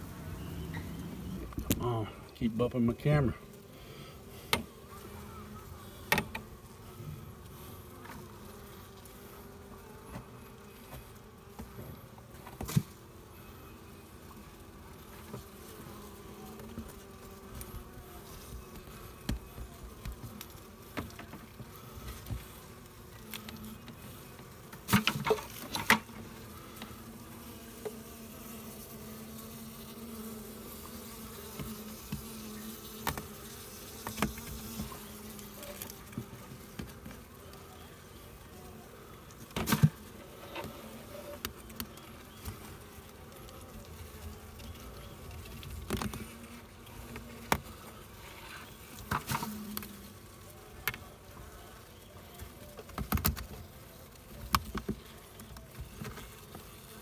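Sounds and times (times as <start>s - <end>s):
honey bees buzzing: 0.0s - 57.0s.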